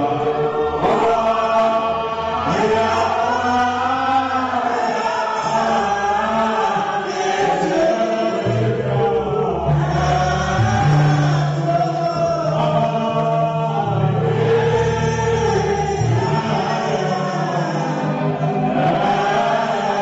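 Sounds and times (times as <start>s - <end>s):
man chanting into a microphone: 0.0s - 20.0s
sustained instrumental notes: 8.2s - 20.0s
deep bass notes: 8.4s - 19.5s.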